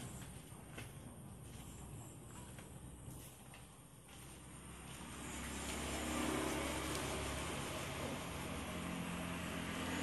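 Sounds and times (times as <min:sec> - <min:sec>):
vehicle engine rumble with hiss: 0:00.0 - 0:10.0.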